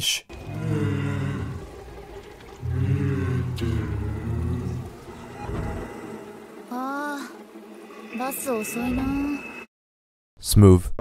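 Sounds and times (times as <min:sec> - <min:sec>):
deep distorted growling voice: 0:00.3 - 0:06.8
low rumbles: 0:00.3 - 0:09.4.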